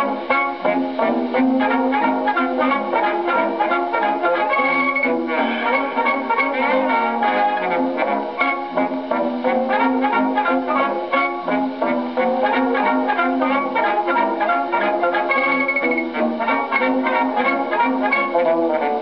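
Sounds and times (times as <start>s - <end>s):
dance band on old gramophone record: 0.0s - 19.0s.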